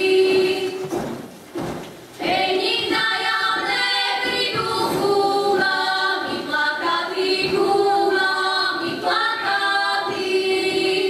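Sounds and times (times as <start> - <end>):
women singing unaccompanied: 0.0 - 1.1, 2.2 - 11.0.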